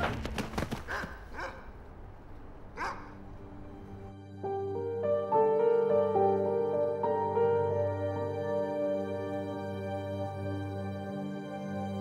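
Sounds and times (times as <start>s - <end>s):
dog barking: 1.0s - 1.7s, 2.8s - 3.2s.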